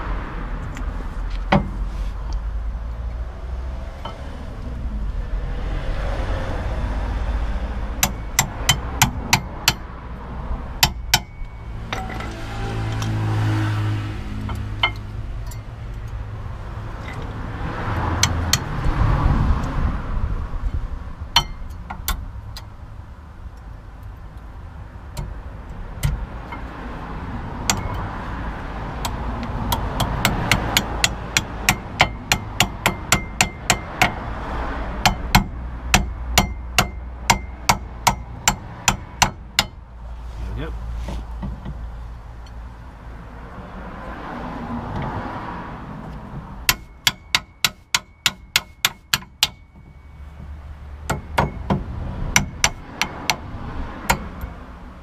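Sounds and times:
metal taps and clicks: 14.5 - 16.2, 46.1 - 51.8.

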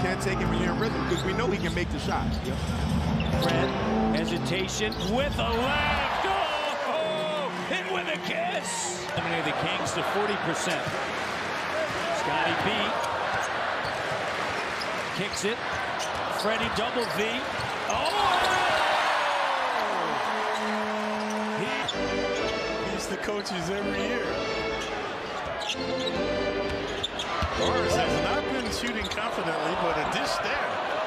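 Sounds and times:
crowd noise: 0.0 - 31.0
arena music steady notes: 21.8 - 29.5.

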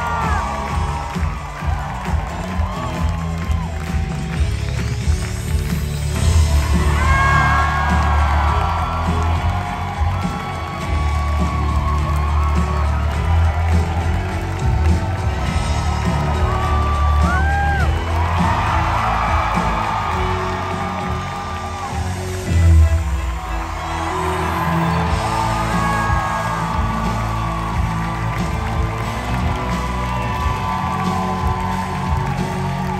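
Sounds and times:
audience cheering: 0.0 - 32.9
loud music with heavy bass: 0.0 - 32.9
sharp whoops: 16.3 - 22.2.

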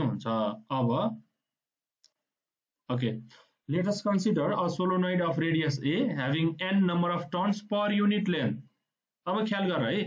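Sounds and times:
man speaking: 0.0 - 1.3, 2.8 - 10.0.

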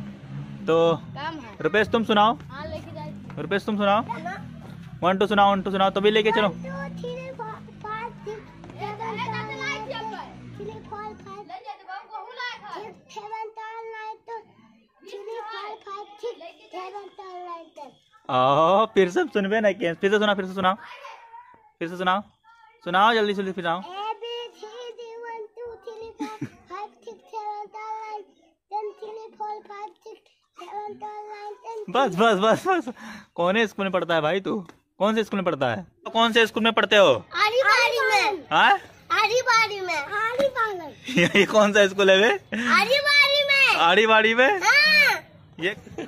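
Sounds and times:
child chanting: 6.3 - 18.2, 23.8 - 32.0, 37.3 - 38.5
girl reciting in sing-song voice: 6.4 - 18.1, 23.8 - 31.9.

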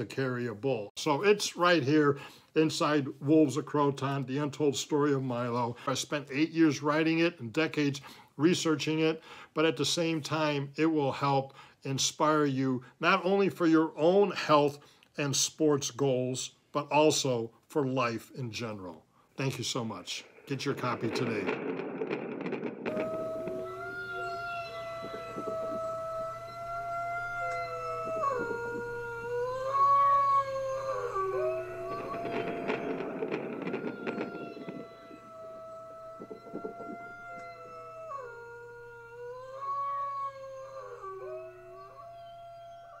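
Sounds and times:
wolves howling: 22.8 - 43.0.

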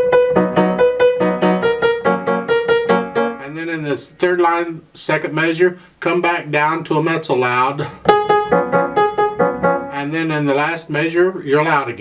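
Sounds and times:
grand piano quick notes: 0.0 - 3.6, 7.9 - 10.5.

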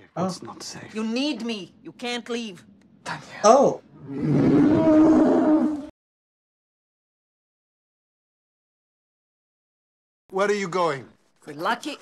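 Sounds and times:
creature-like roar: 4.0 - 5.9.

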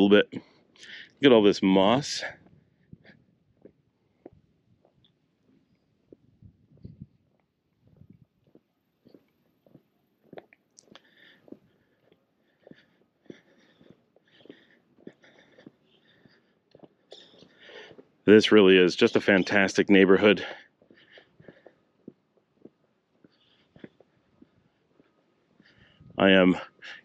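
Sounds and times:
footsteps on pavement: 2.3 - 26.4.

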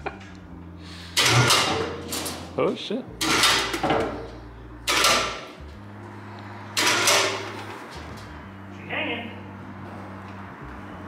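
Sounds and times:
loud metal bangs: 1.2 - 2.6, 3.2 - 5.6, 6.7 - 7.9.

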